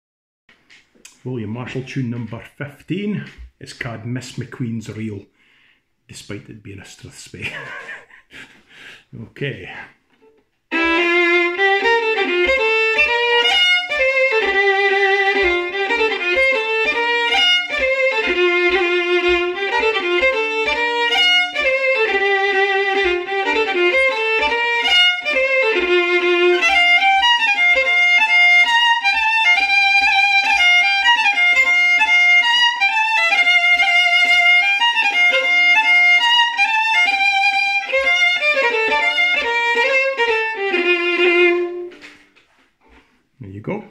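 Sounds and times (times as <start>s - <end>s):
low tapping beat: 0.6s - 4.6s, 10.7s - 42.1s
solo fiddle playing: 9.4s - 42.6s.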